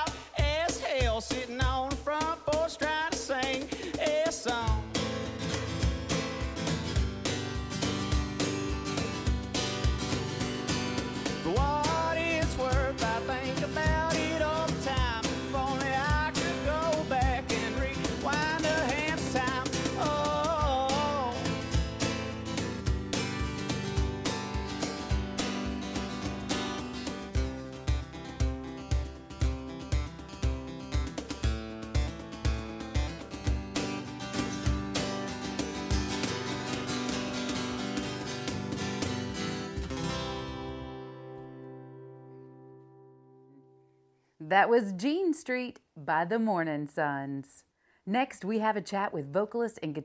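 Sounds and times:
person singing: 0.0 - 5.0, 11.4 - 21.8
percussion beats: 0.0 - 40.7
acoustic guitar: 0.0 - 50.0.

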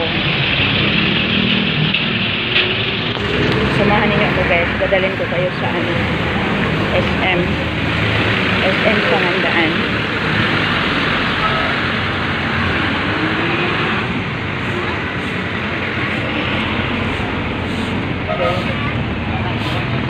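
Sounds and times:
busy road traffic: 0.0 - 20.0.

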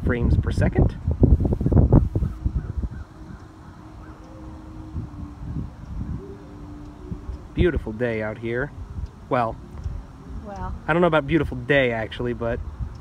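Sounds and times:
wind buffeting microphone: 0.0 - 13.0
faint steady hum: 1.2 - 13.0.

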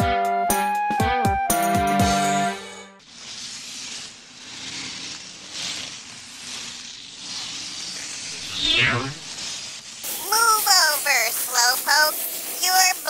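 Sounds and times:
ice skates scraping ice: 3.0 - 13.0.

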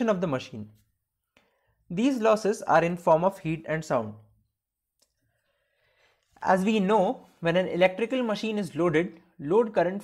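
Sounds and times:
man narrating: 0.0 - 0.8, 1.9 - 4.3, 6.4 - 10.0
faint breath: 5.2 - 6.4.

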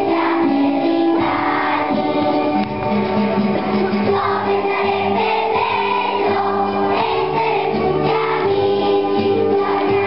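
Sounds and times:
children's choir singing: 0.0 - 2.7, 3.7 - 10.0.

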